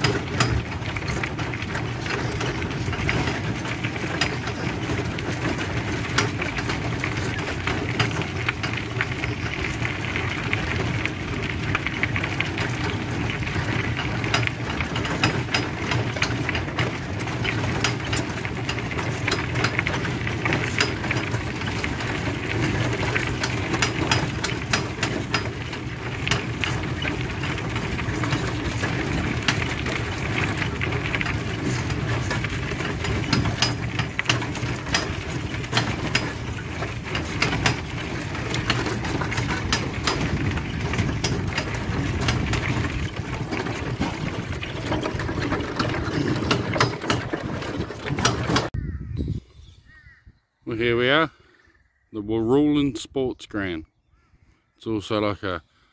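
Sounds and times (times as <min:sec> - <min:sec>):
small clicks and rattles: 0:00.0 - 0:48.8
trailer rolling rumble: 0:00.0 - 0:48.8.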